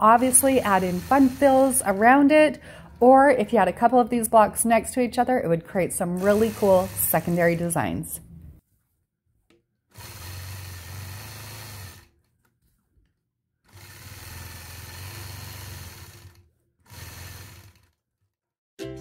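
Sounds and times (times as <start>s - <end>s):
sewing machine stitching: 0.0s - 3.0s, 6.0s - 7.9s, 9.9s - 12.6s, 13.6s - 18.4s.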